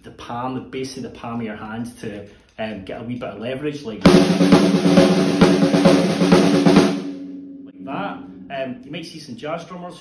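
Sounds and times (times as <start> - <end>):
kick drum beats: 4.1 - 7.1.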